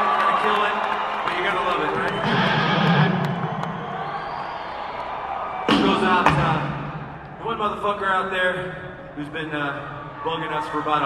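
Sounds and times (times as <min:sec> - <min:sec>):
crowd noise: 0:00.0 - 0:11.0
man talking over pa system: 0:01.3 - 0:02.6.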